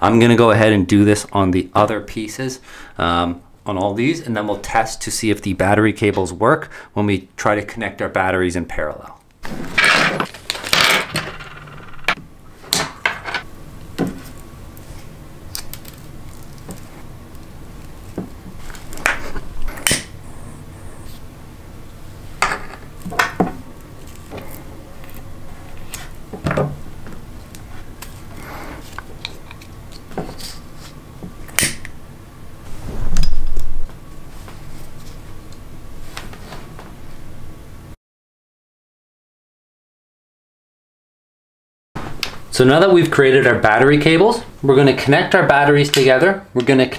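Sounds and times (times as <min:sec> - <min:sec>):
cables handling noise: 0:09.2 - 0:20.2, 0:22.6 - 0:31.9.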